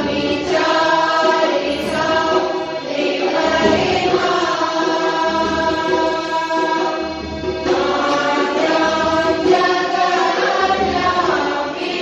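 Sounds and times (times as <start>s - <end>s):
harmonium held tones: 0.0s - 11.7s
group singing a prayer: 0.0s - 12.0s.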